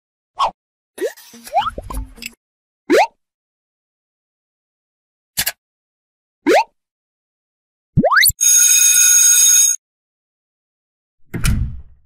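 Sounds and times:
cartoon pop: 0:08.0 - 0:08.3
upward-sweeping bloops: 0:08.0 - 0:08.4.

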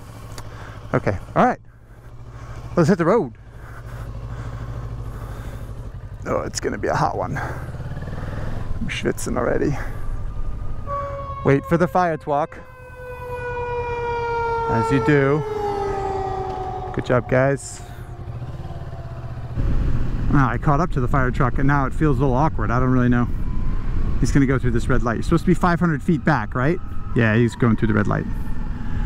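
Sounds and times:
motorcycle engine running: 0:00.0 - 0:24.2.

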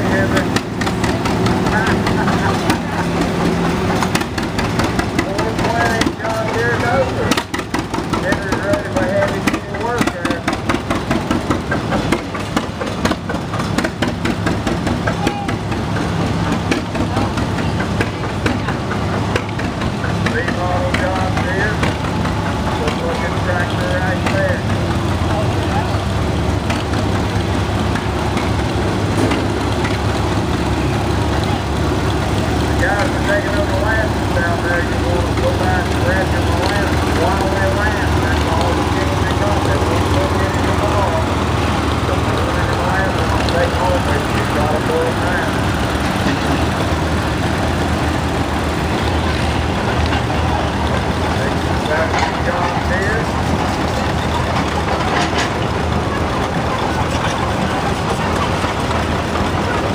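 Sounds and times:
crowd chatter: 0:00.0 - 0:59.9
tractor engines running: 0:00.0 - 0:59.9.

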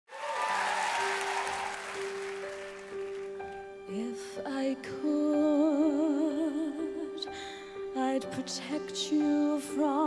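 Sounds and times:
audience applause: 0:00.1 - 0:03.7.

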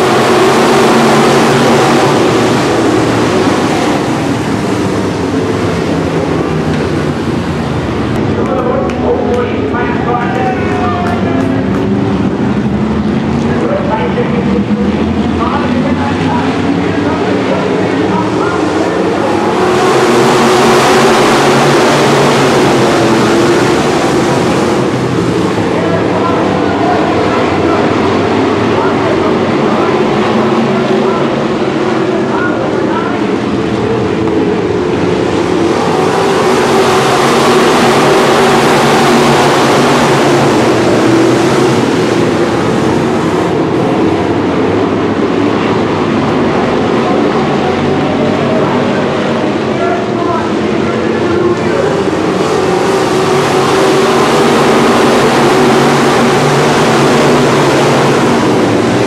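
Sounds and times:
race car engines roaring: 0:00.0 - 0:59.0.

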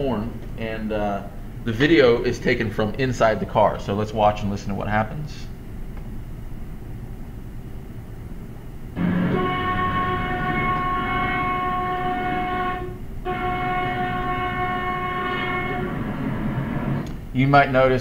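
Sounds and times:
car horn sounding: 0:09.0 - 0:17.0.

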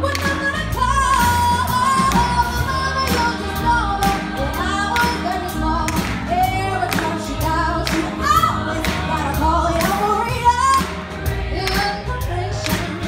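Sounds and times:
bass guitar: 0:00.0 - 0:13.0
drum kit beat: 0:00.0 - 0:13.0.

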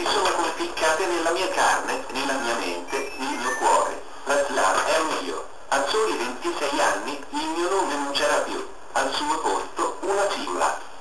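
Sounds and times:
person speaking: 0:00.0 - 0:10.9.

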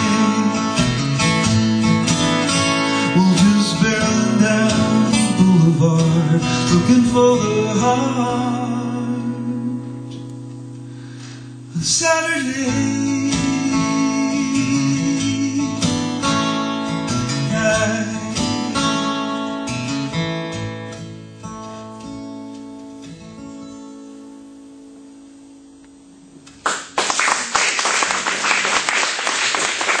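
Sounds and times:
acoustic guitar strumming: 0:00.0 - 0:26.6
audience applause: 0:26.6 - 0:30.0.

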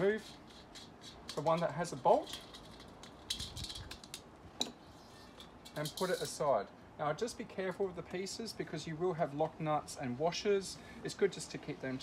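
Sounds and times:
small metal parts clicking: 0:00.0 - 0:04.7, 0:05.3 - 0:06.4.

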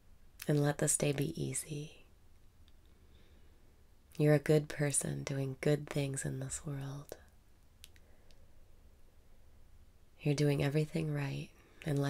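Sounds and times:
faint low hum: 0:00.0 - 0:12.0
faint small clicks: 0:02.3 - 0:03.0, 0:07.1 - 0:08.4.

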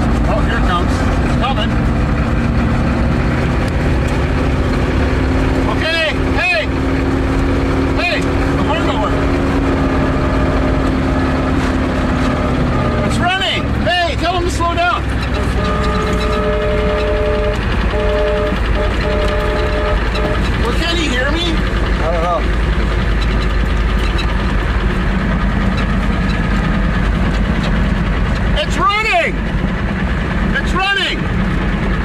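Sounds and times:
vehicle engines droning: 0:00.0 - 0:32.0
two-note horn blasts: 0:09.8 - 0:11.5, 0:15.2 - 0:21.0.

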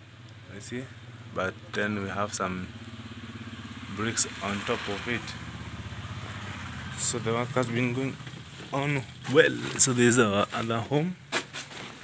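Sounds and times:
engine idling: 0:00.0 - 0:11.3.

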